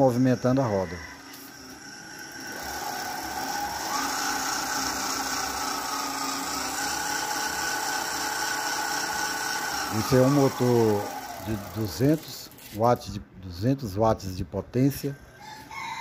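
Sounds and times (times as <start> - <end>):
electric bicycle motor whine: 0.0 - 12.8.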